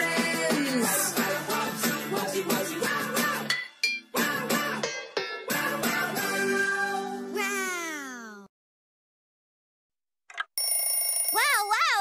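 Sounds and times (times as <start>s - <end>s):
alarm clock bell ringing: 10.6s - 12.0s.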